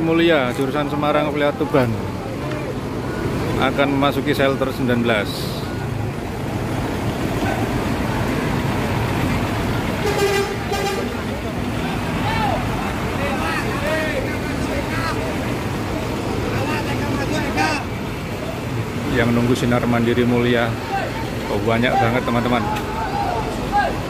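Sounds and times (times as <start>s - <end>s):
bus engine running: 0.0s - 24.0s
crowd chatter: 0.0s - 24.0s
bus horn toot: 10.0s - 11.3s.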